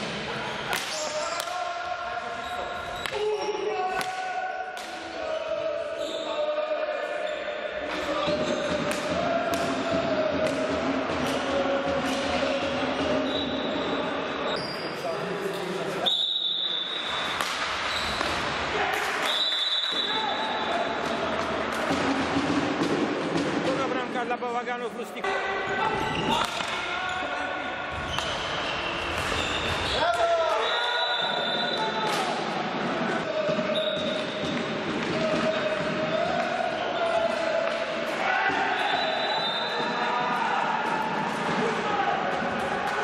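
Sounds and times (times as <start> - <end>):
players' voices echoing: 0.0 - 43.0
sticks striking ball: 8.7 - 12.3.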